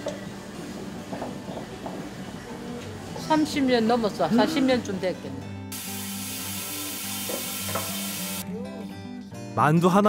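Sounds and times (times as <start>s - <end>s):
steam hissing: 5.7s - 8.4s.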